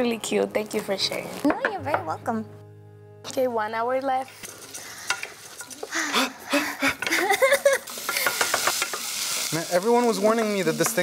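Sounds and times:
wooden spoon scraping: 4.3 - 6.1
food sizzling in saucepan: 4.3 - 11.0
person laughing: 5.9 - 8.2.

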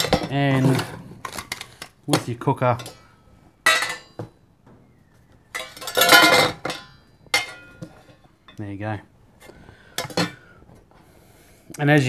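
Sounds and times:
metal mess tins knocking and scraping: 0.0 - 8.6, 9.9 - 10.5.

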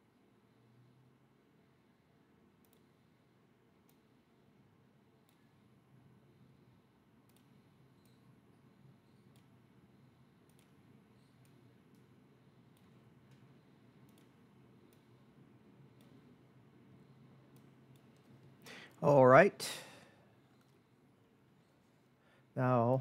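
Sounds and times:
computer mouse clicks: 2.6 - 3.0, 3.8 - 4.1, 5.2 - 5.4, 7.2 - 8.3, 9.0 - 9.6, 10.4 - 18.7.

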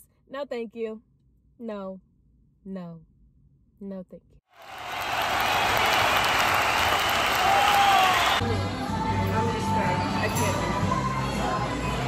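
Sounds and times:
crowd cheering: 4.5 - 8.4
crowd applauding: 4.6 - 8.4.

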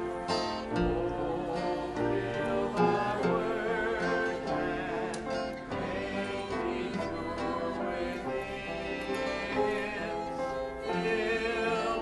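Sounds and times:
congregation singing a hymn: 0.0 - 12.0
piano accompaniment: 0.0 - 12.0.

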